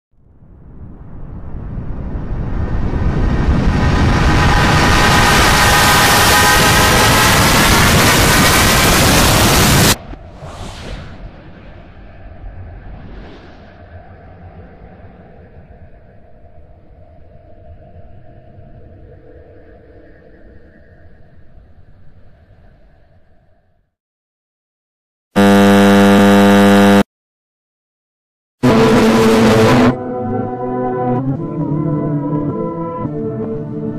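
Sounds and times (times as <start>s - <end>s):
rushing noise with whistling tones: 0.4s - 23.6s
short whooshes: 10.0s - 14.0s.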